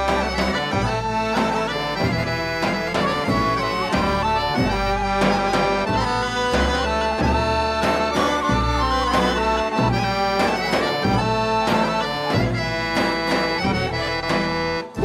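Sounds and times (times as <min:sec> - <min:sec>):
accordion folk dance tune: 0:00.0 - 0:15.0.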